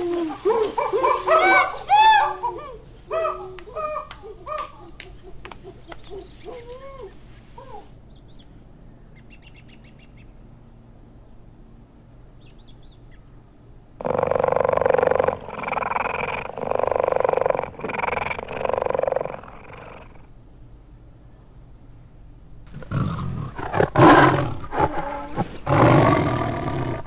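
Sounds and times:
forest background: 0:00.0 - 0:27.0
big cat growling: 0:14.0 - 0:20.3, 0:22.7 - 0:27.0.

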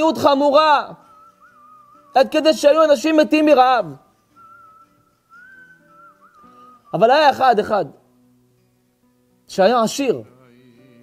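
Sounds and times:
faint whistle-like melody: 0:01.0 - 0:02.5, 0:04.2 - 0:07.4.

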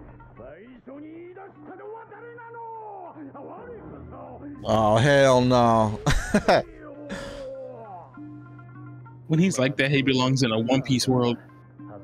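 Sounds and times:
person speaking theatrically: 0:04.6 - 0:07.4.

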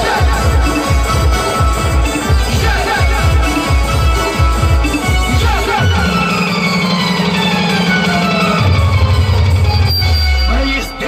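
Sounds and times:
loud music from sound system: 0:00.0 - 0:11.0
held low bass note: 0:03.9 - 0:10.6.

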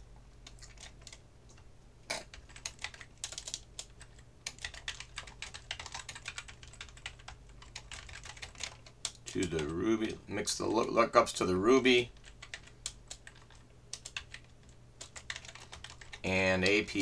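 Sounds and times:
typing on computer keyboard: 0:00.4 - 0:01.2, 0:02.3 - 0:09.8, 0:12.2 - 0:17.0.

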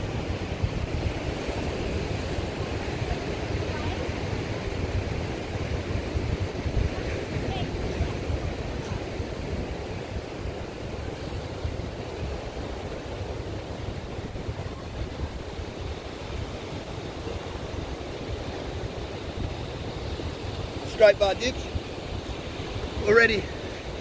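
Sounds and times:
ocean surf washing: 0:00.0 - 0:24.0
wind buffeting microphone: 0:00.0 - 0:24.0.

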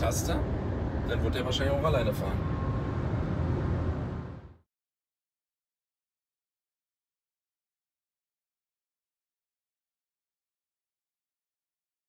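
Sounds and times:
road and tyre rumble in car: 0:00.0 - 0:04.6.

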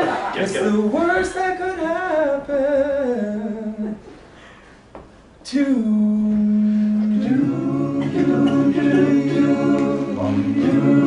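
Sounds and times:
a cappella group singing: 0:05.5 - 0:11.0.

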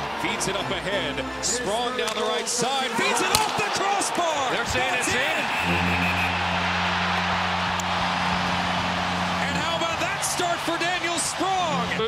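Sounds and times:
crowd cheering: 0:00.0 - 0:12.0
goal horn blast: 0:05.0 - 0:11.9.

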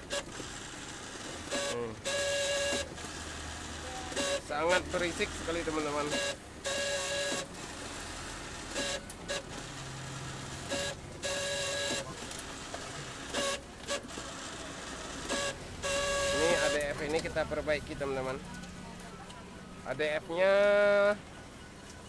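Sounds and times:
photocopier document feeder running: 0:00.0 - 0:18.5.

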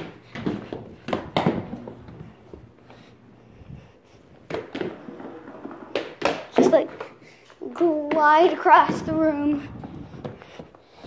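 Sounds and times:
wheels rolling and scraping: 0:00.0 - 0:07.2.

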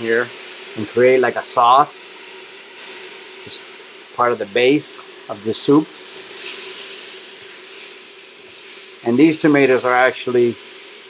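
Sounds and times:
food sizzling in a pot: 0:00.0 - 0:11.0
spatula stirring: 0:05.9 - 0:10.0.

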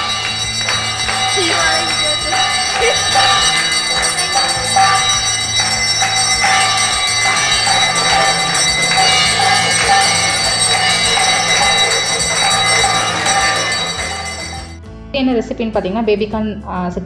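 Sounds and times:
bells ringing and jingling: 0:00.0 - 0:14.8
people clapping in rhythm: 0:00.0 - 0:14.8
steady low drone: 0:00.0 - 0:14.8.

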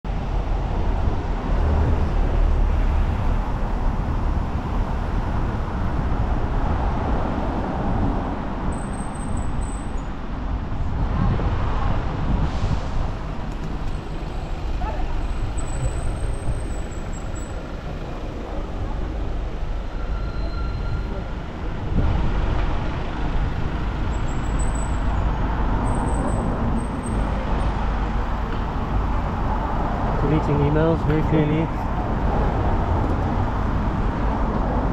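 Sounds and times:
traffic engine and tyre noise: 0:00.0 - 0:34.9
wind on microphone: 0:10.4 - 0:17.4
high-pitched squeals: 0:19.9 - 0:21.3.

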